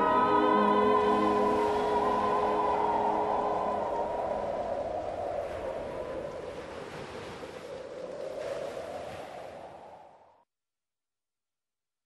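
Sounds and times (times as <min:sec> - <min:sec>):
choral music: 0:00.0 - 0:06.3
steady rushing noise: 0:00.0 - 0:09.8.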